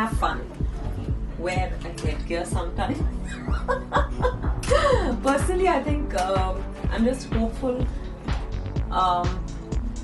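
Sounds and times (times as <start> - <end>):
background music with steady beat: 0.0 - 10.0
woman chuckling and laughing: 2.9 - 5.2.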